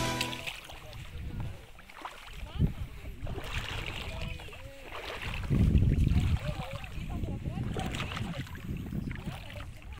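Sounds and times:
seawater lapping: 0:00.0 - 0:09.9
wind rumbling on microphone: 0:00.7 - 0:09.9.

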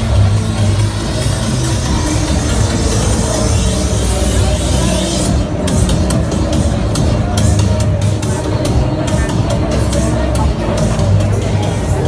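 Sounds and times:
electronic dance music with heavy bass: 0:00.0 - 0:12.0.

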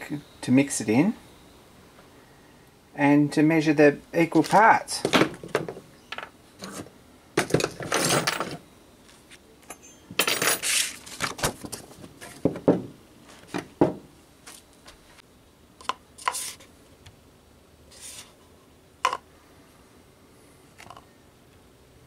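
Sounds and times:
small metal objects clinking on workbench: 0:09.7 - 0:11.0.

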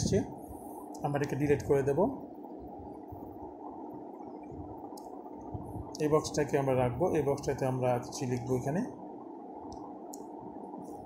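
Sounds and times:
low background hiss and hum: 0:00.0 - 0:11.0.

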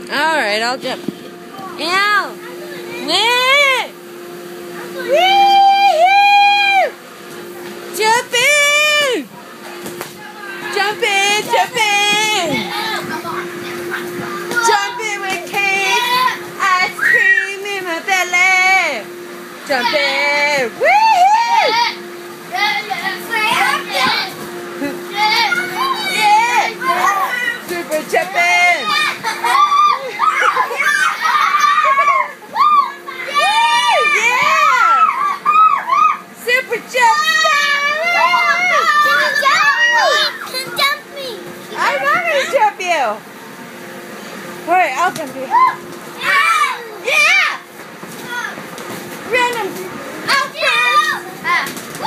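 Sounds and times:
steady low hum: 0:00.0 - 0:52.0
children shouting and squealing: 0:15.9 - 0:17.6, 0:25.1 - 0:27.7, 0:28.8 - 0:36.3, 0:36.9 - 0:42.5, 0:45.5 - 0:48.6, 0:50.2 - 0:52.0.

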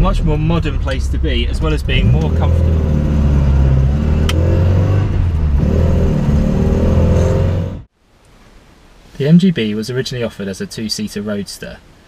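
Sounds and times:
car engine while driving: 0:00.0 - 0:07.9
road noise inside cabin: 0:00.0 - 0:09.3.

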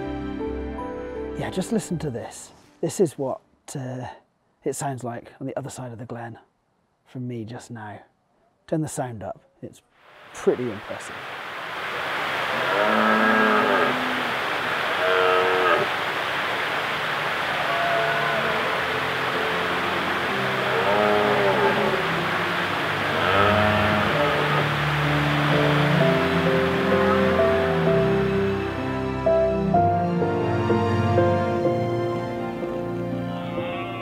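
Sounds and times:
soft background music: 0:00.0 - 0:04.1, 0:17.3 - 0:34.0
red deer stags roaring: 0:12.5 - 0:16.0, 0:17.5 - 0:19.7, 0:20.3 - 0:27.6.

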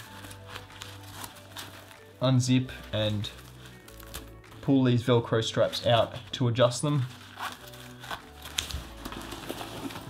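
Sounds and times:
nylon fabric rustling: 0:00.0 - 0:04.8, 0:05.6 - 0:10.0.

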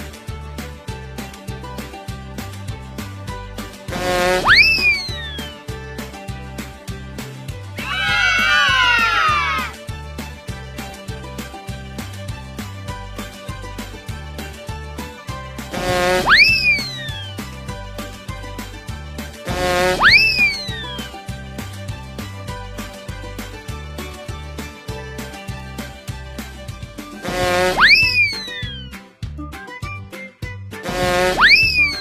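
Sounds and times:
background music with steady beat: 0:00.0 - 0:32.0
sweeping cartoon whistle: 0:04.4 - 0:05.6, 0:16.2 - 0:17.4, 0:20.0 - 0:21.1, 0:27.7 - 0:29.0, 0:31.3 - 0:32.0.

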